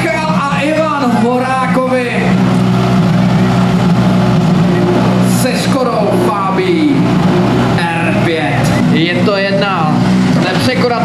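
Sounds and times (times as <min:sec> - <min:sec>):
rally car engine idling: 0:00.0 - 0:11.0.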